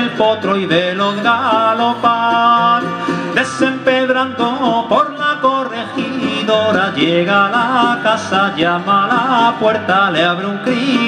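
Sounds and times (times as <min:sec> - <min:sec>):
acoustic guitar: 0:00.0 - 0:11.0
mandolin: 0:00.0 - 0:11.0
men singing: 0:00.0 - 0:11.0.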